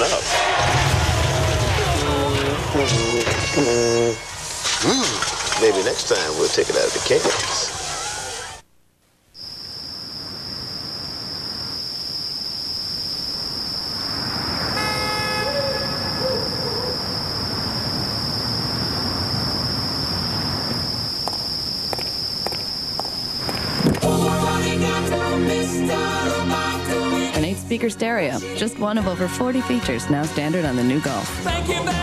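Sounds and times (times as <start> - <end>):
low ambient hiss: 2.4 - 32.0
short horn-like toot: 2.8 - 4.3, 14.7 - 17.0.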